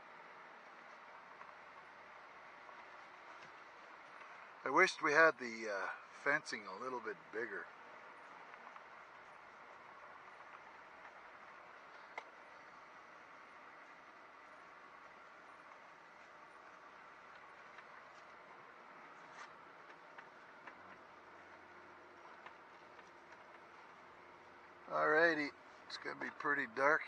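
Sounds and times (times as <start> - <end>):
faint clicks: 11.9 - 12.5.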